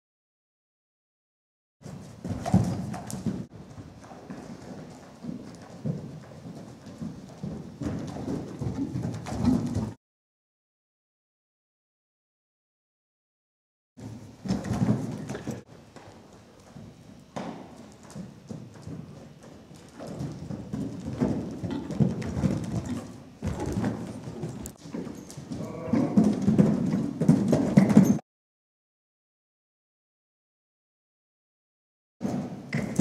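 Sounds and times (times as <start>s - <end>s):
horse hoofbeats on sand: 1.8s - 10.0s, 14.0s - 28.2s.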